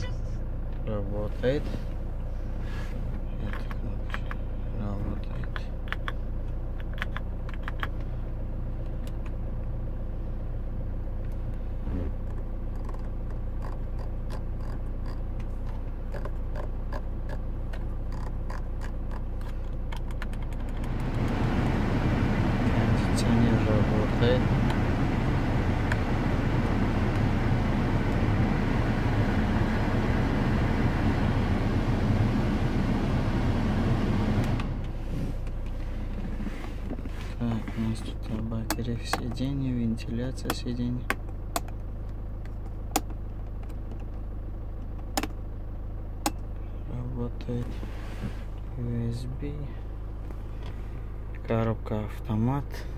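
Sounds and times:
car blower fan blowing: 0:00.0 - 0:52.9
idling car hum: 0:00.0 - 0:52.9.

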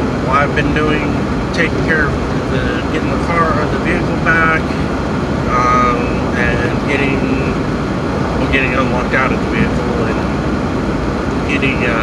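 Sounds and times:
engine and road noise in car: 0:00.0 - 0:12.0
man talking: 0:00.2 - 0:04.9, 0:05.5 - 0:07.6, 0:08.4 - 0:10.4, 0:11.4 - 0:12.0.

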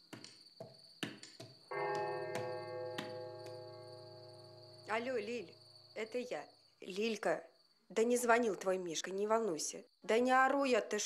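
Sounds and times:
crickets chirring: 0:00.0 - 0:11.0
light knocks: 0:00.1 - 0:03.6.

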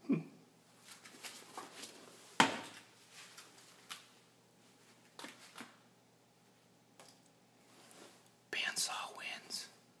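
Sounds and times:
person whispering: 0:08.5 - 0:09.8.

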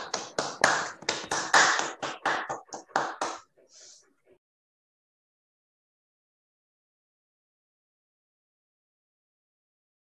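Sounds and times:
people clapping: 0:00.0 - 0:03.5.

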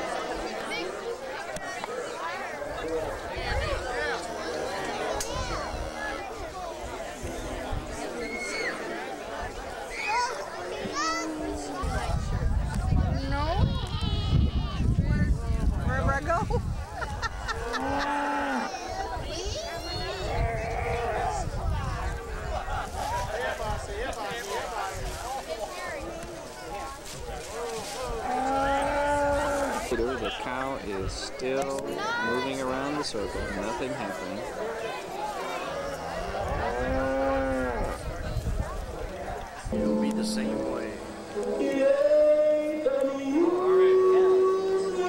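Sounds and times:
crowd chatter: 0:00.0 - 0:45.0
people talking: 0:00.0 - 0:45.0
children calling out: 0:08.0 - 0:09.0, 0:09.8 - 0:12.1.

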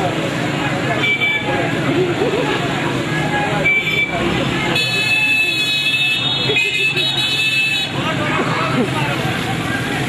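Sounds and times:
crowd of voices: 0:00.0 - 0:10.0
motorcycle and car engines: 0:00.0 - 0:10.0.

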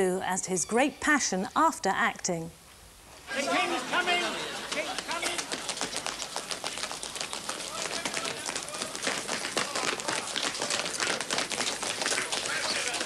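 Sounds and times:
people running in boots: 0:03.9 - 0:13.0.

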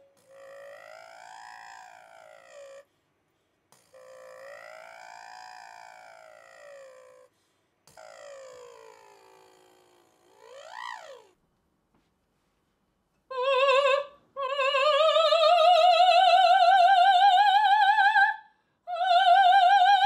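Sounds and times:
breaths: 0:02.9 - 0:03.8, 0:07.3 - 0:07.8, 0:18.4 - 0:18.9
woman singing vocal exercises: 0:13.3 - 0:20.0.

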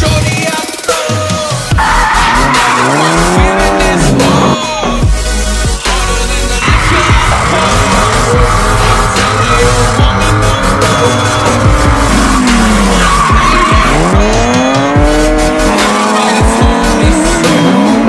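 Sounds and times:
music playing: 0:00.0 - 0:18.0
tyres squealing: 0:01.7 - 0:05.0, 0:06.3 - 0:18.0
car engine revving: 0:01.7 - 0:18.0.

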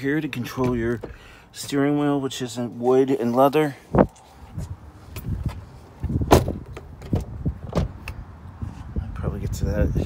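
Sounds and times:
loud thump: 0:06.2 - 0:06.7
car door and body knocks: 0:06.2 - 0:08.0.

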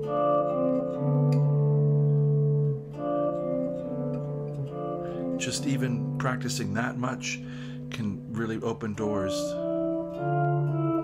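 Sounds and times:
clean electric guitar notes: 0:00.0 - 0:11.0.

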